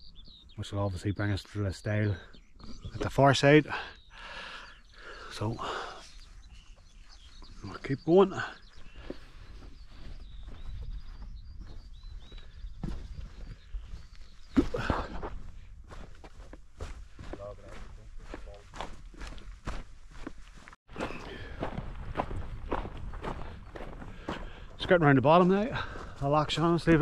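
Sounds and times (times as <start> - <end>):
footsteps on a mountain track: 2.1 - 27.0.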